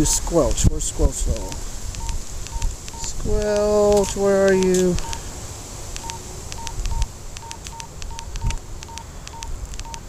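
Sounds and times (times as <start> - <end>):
high keypad beeps: 1.9 - 5.2, 6.0 - 10.0.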